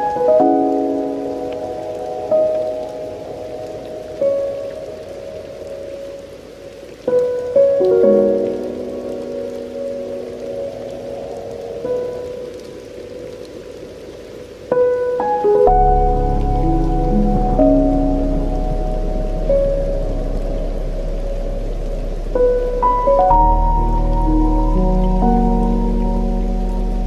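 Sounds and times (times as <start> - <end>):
slow soft piano: 0.0 - 27.0
steady rain: 0.0 - 27.0.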